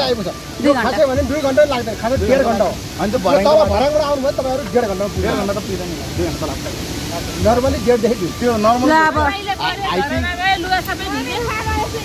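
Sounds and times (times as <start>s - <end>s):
man talking: 0.0s - 10.3s
steady hissing noise: 0.0s - 12.0s.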